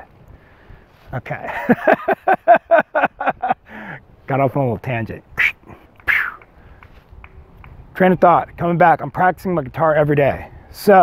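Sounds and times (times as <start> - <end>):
man exhaling breathily: 3.6 - 4.0.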